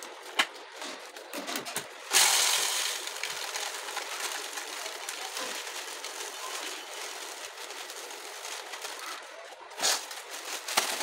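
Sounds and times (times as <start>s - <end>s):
dry grains pouring into plastic jar: 2.1s - 8.8s.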